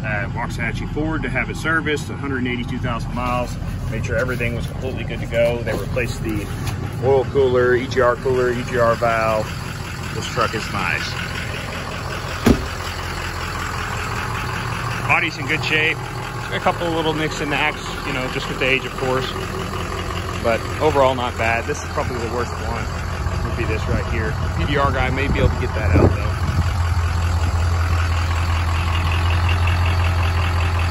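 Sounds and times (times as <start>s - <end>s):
diesel engine idling: 0.0s - 30.9s
car door shutting: 12.4s - 12.9s.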